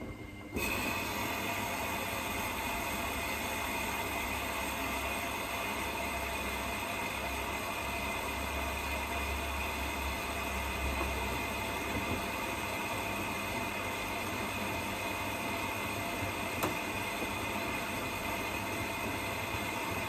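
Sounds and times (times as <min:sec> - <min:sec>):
washing machine motor whine: 0:00.0 - 0:20.0.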